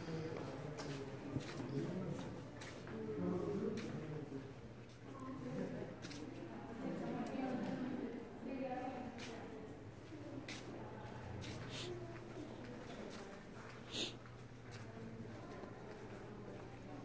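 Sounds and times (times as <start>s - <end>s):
people talking indistinctly: 13.8s - 14.2s.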